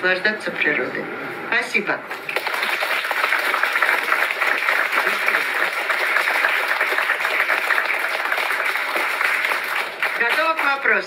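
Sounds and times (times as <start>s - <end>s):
audience applauding: 2.2s - 11.0s.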